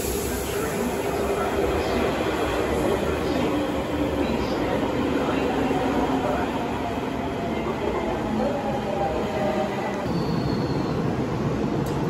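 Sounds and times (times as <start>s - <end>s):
electric train rumbling past: 0.0s - 12.0s
faint train whine: 0.0s - 12.0s.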